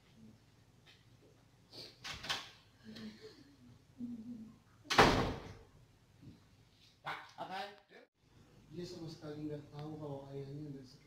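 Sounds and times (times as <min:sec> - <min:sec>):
door slamming: 0:04.9 - 0:05.6.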